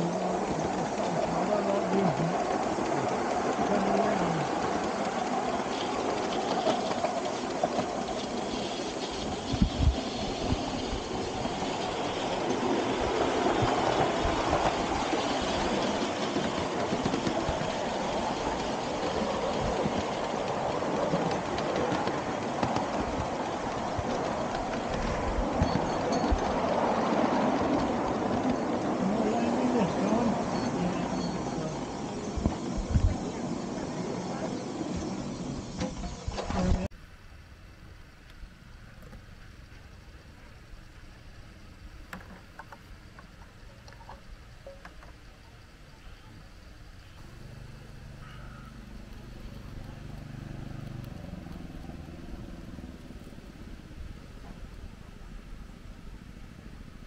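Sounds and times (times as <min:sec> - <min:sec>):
wheels rumbling on rails: 0:00.0 - 0:57.0.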